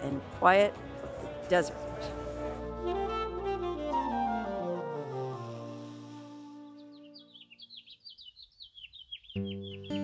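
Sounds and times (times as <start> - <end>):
small bird chirping: 6.8 - 10.0.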